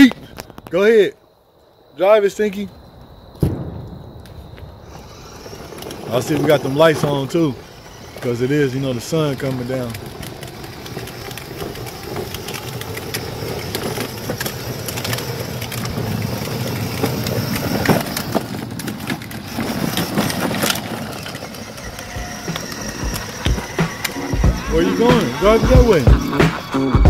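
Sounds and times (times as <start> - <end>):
electric motor whir: 4.8 - 27.0
plastic wheels rattling on concrete: 4.8 - 27.0.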